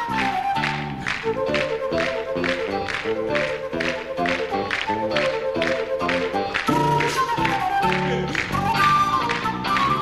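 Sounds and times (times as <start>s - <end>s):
flute melody: 0.0s - 10.0s
live rock band playing: 0.0s - 10.0s.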